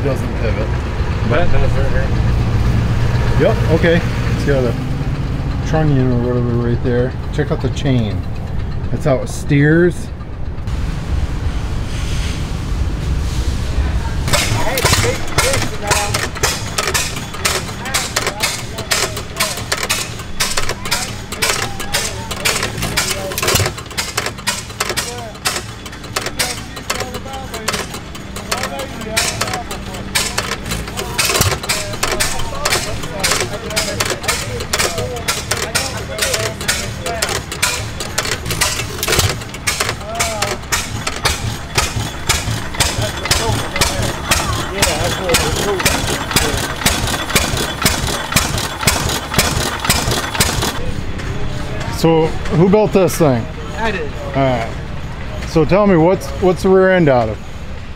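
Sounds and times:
stationary engines firing pops: 14.3s - 50.8s.

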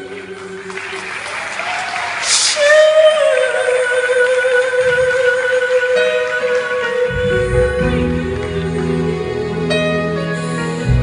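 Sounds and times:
audience applauding: 0.0s - 5.5s, 6.1s - 9.8s.

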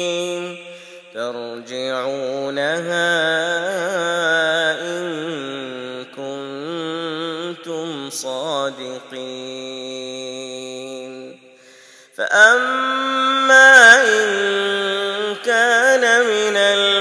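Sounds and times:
man chanting recitation: 0.0s - 11.5s, 12.2s - 17.0s.

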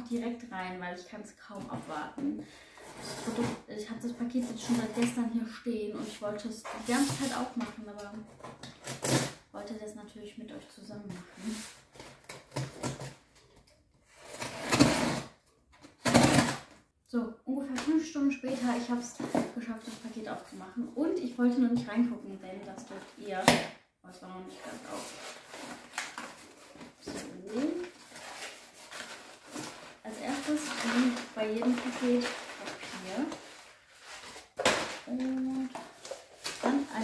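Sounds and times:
person speaking: 3.1s - 8.2s, 17.2s - 25.4s, 27.0s - 28.0s, 30.0s - 33.5s, 35.0s - 37.0s
packing paper rustling: 24.7s - 37.0s.

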